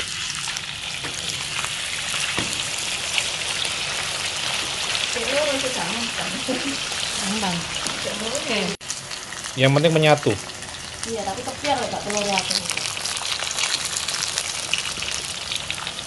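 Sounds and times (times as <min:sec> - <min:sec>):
meat sizzling in hot oil: 0:00.0 - 0:16.0.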